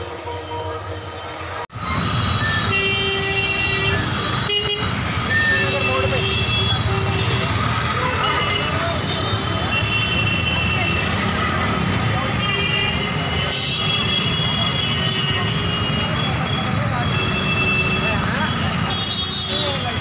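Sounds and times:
crowd chatter: 0.0s - 20.0s
vehicle horns honking: 2.0s - 20.0s.

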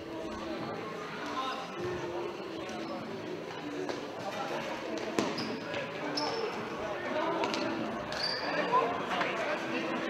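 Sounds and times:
players and spectators voices: 0.0s - 10.0s
ball bouncing on hall floor: 5.0s - 5.8s
shoe squeaks: 5.2s - 6.6s, 8.1s - 8.7s.

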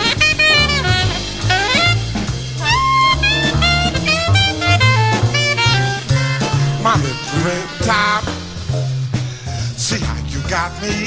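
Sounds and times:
saxophone solo: 0.0s - 8.7s
bass: 0.0s - 11.0s
drum kit: 0.0s - 11.0s.

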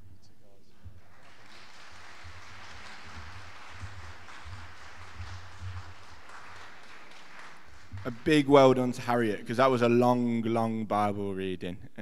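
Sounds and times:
crowd clapping: 0.7s - 9.6s.

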